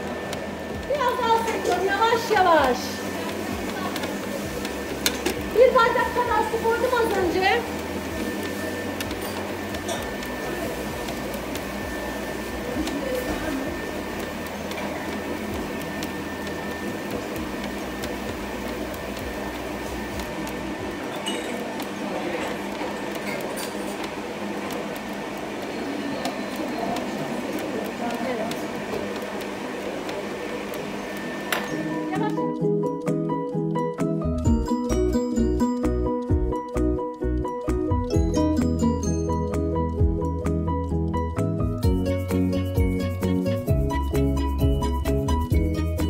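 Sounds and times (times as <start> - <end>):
stand mixer motor running: 0.0 - 32.8
background music: 31.8 - 46.0.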